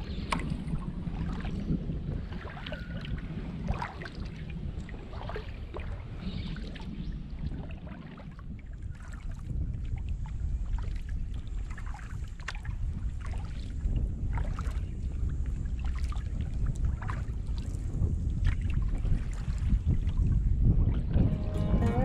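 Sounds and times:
paddle splashing water: 0.0 - 20.3
wind buffeting microphone: 0.0 - 22.0.

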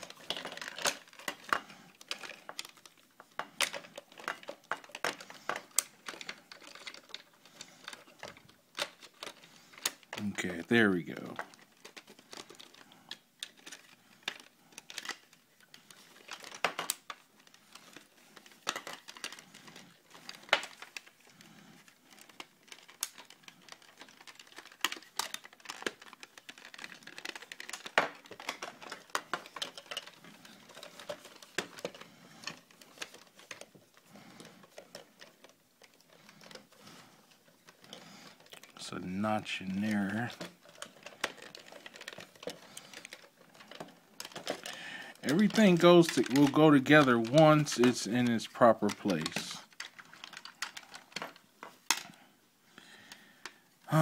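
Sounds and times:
plastic toy parts clicking: 0.0 - 54.0
rustle of handling plastic: 0.0 - 54.0.

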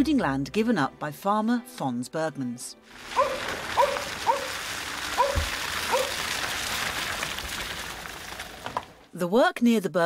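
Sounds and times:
tyres hissing through slush: 2.9 - 9.0.

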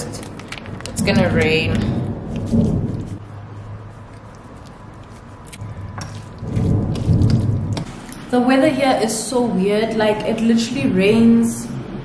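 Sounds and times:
thunder rumbling: 0.9 - 3.2, 5.6 - 8.0.

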